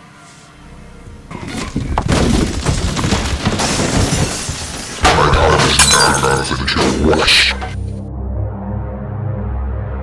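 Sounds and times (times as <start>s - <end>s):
music: 0.0s - 2.7s, 7.0s - 10.0s
crashing and shattering: 1.3s - 7.1s.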